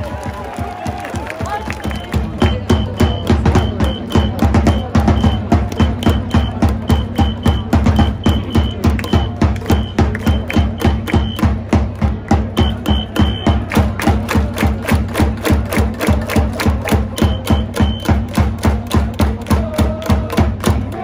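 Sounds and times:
drums beating steady rhythm: 0:00.0 - 0:21.0.

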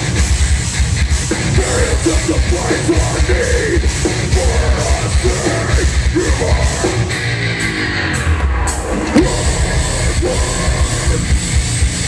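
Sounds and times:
distorted electric guitars: 0:00.0 - 0:12.0
fast drum kit: 0:00.0 - 0:12.0.

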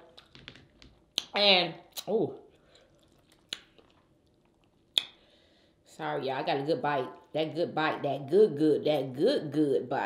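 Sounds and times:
person chewing: 0:02.5 - 0:05.2.

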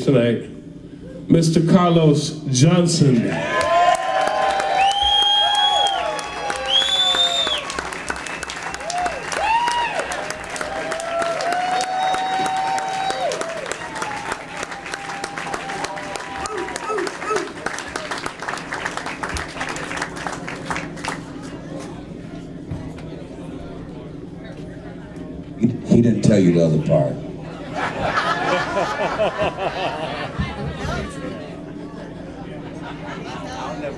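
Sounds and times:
crowd cheering and whooping: 0:03.2 - 0:20.0, 0:27.6 - 0:31.4
audience applauding: 0:03.4 - 0:21.6
high whistles: 0:04.7 - 0:10.0.

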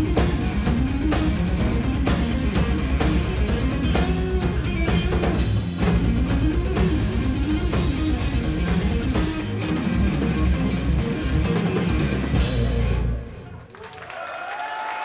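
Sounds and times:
drum and cymbal hits: 0:00.0 - 0:13.1
hard rock band playing: 0:00.0 - 0:13.5.

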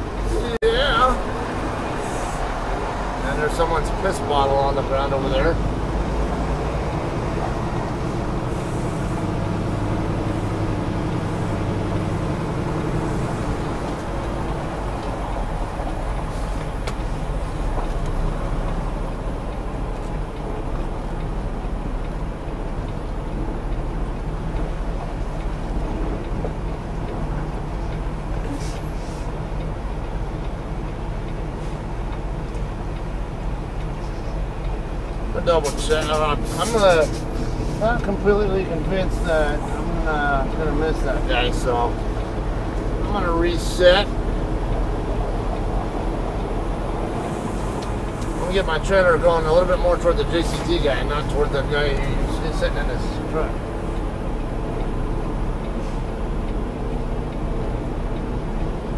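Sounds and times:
diesel truck engine running: 0:00.0 - 0:58.9.

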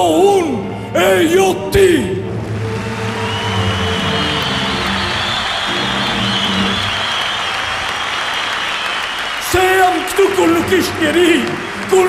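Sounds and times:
background music: 0:00.0 - 0:12.0
audience applauding: 0:02.4 - 0:12.0.

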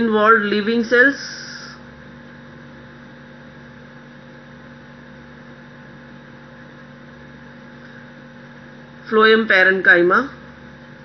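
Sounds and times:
electrical hum: 0:00.0 - 0:11.0.

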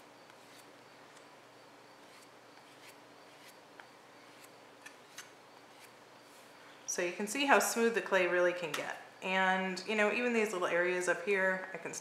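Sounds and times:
faint steady hum: 0:00.0 - 0:12.0
rib scraping clay: 0:00.3 - 0:01.3, 0:02.0 - 0:06.5.

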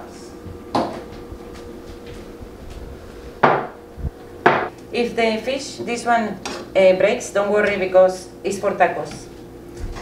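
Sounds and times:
tableware knock: 0:03.4 - 0:03.8, 0:04.4 - 0:04.7.

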